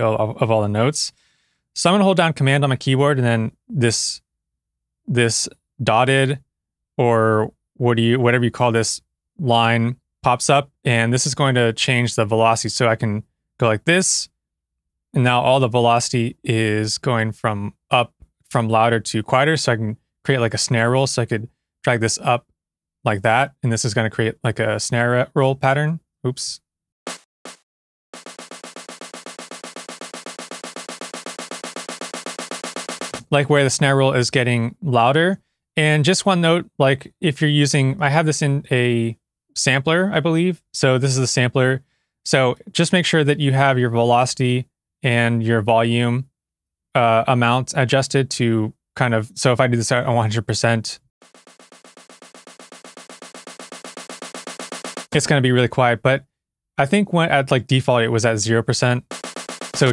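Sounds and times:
snare drum roll: 27.1s - 27.6s, 28.2s - 33.4s, 51.2s - 55.3s, 59.0s - 59.9s.

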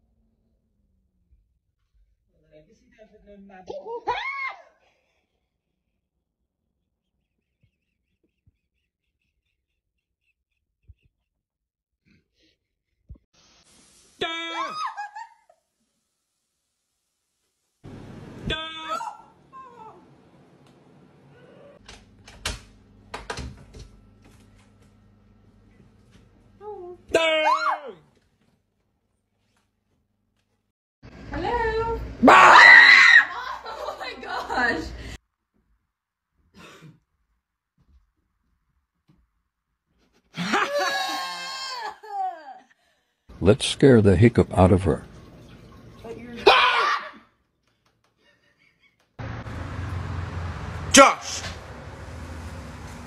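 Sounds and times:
woman screaming: 3.8s - 4.8s, 14.2s - 15.2s, 18.5s - 20.1s, 27.1s - 28.0s, 32.2s - 33.7s, 40.6s - 42.5s, 46.4s - 47.3s
voice: 43.4s - 45.0s, 50.9s - 51.6s.

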